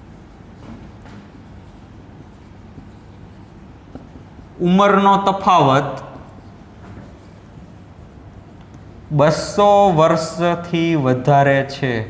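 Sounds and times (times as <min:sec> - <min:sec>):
marker scratching on whiteboard: 0:00.0 - 0:11.0.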